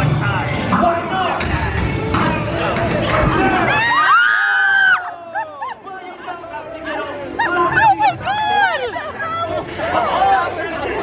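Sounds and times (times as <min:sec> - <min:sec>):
overlapping voices talking and calling: 0:05.0 - 0:11.0.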